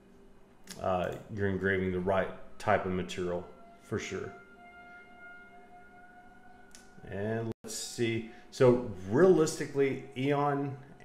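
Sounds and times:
faint steady high tone: 0:00.0 - 0:11.0.

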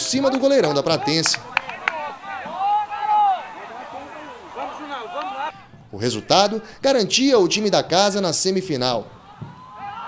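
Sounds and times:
people shouting: 0:00.0 - 0:06.8, 0:09.1 - 0:10.0.

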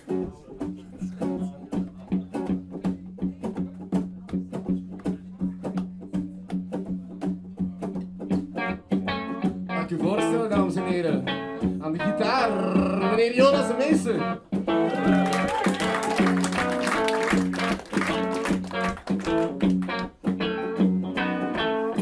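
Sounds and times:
live band playing: 0:00.0 - 0:22.0
plucked guitar: 0:00.0 - 0:22.0.

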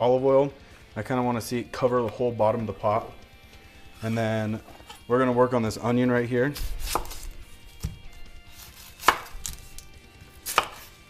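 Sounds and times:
knife cutting onion: 0:06.5 - 0:11.0.

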